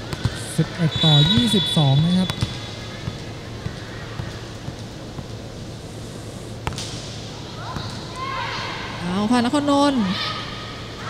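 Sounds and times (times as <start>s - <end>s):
hall background noise: 0.0s - 11.0s
male commentator speaking: 0.4s - 2.4s.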